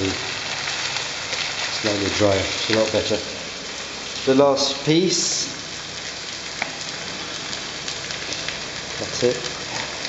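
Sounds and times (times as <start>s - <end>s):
food sizzling in a pan: 0.0s - 10.0s.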